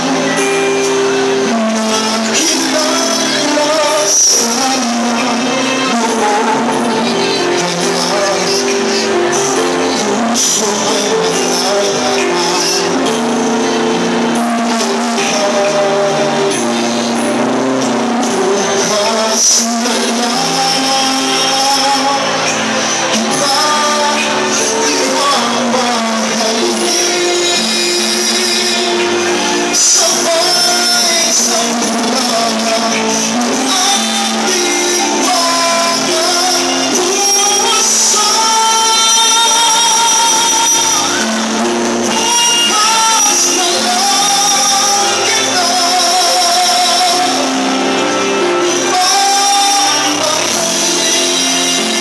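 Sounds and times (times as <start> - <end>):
backing track: 0.0 - 52.0
man singing pop ballad: 0.0 - 52.0.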